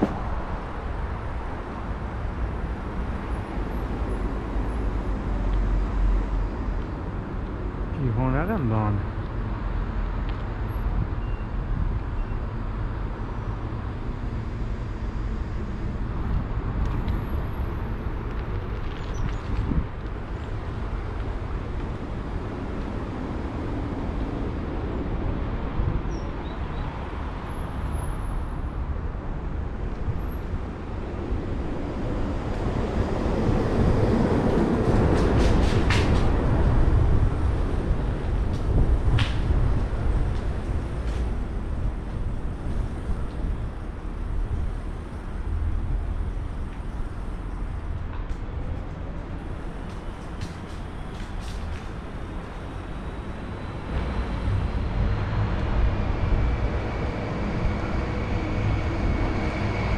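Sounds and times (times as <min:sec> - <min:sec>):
distant road traffic rumble: 0:00.0 - 0:59.9.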